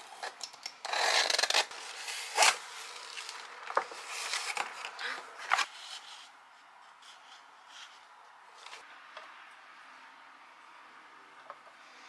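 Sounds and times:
box cutter slicing tape: 0:00.1 - 0:02.6.

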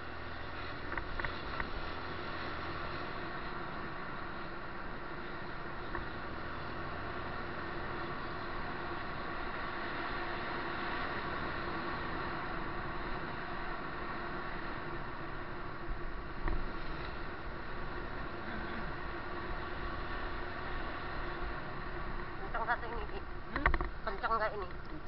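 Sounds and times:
vehicle engine and road noise: 0:00.0 - 0:25.0.

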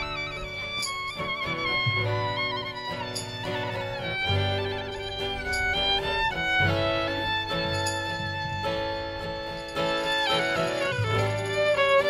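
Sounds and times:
acoustic guitar: 0:00.0 - 0:12.0
fiddle melody: 0:00.0 - 0:12.0.

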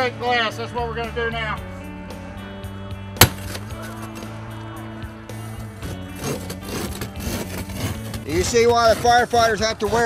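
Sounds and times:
background music: 0:00.0 - 0:10.0
glass saw striking windshield: 0:03.2 - 0:04.0
saw scraping glass: 0:06.2 - 0:09.5.

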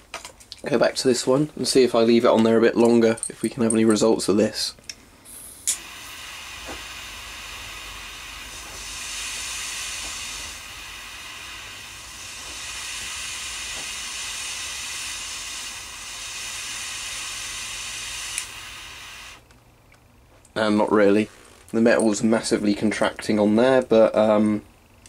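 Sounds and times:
jet lighter flame hissing: 0:05.3 - 0:19.5
lighter click: 0:05.6 - 0:05.9, 0:18.0 - 0:19.4.

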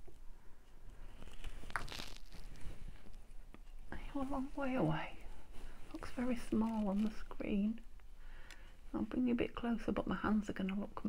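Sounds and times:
paper and card rustling: 0:01.1 - 0:03.2.

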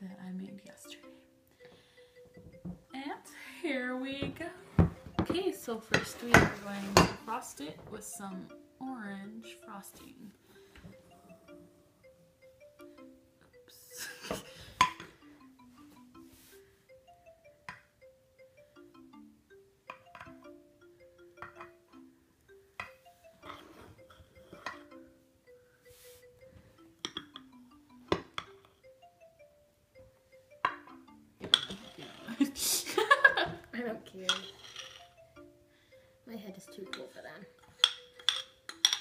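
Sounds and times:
light simple background melody: 0:00.0 - 0:39.0.

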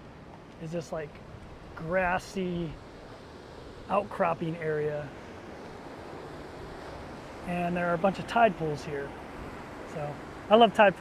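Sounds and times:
ocean surf over rocks: 0:00.0 - 0:11.0.

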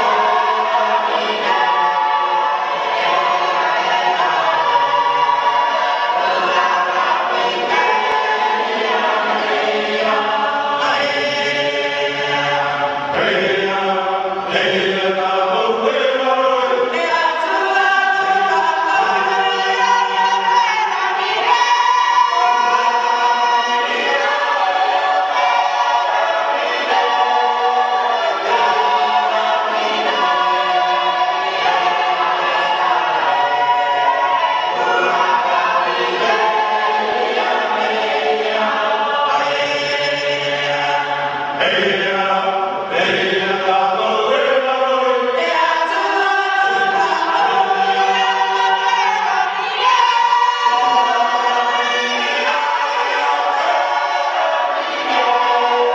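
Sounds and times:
choir singing in harmony: 0:00.0 - 0:55.9.

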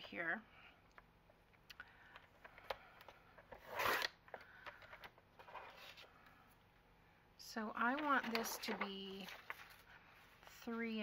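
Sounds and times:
paper rustling: 0:07.8 - 0:10.7.

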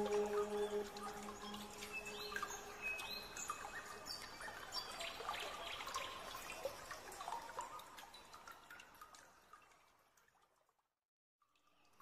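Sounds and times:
water trickling and dripping: 0:00.0 - 0:12.0.

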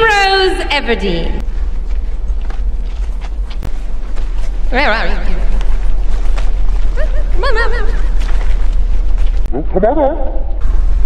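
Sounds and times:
steady low rumble: 0:00.0 - 0:11.0
faint footsteps: 0:01.4 - 0:09.5.

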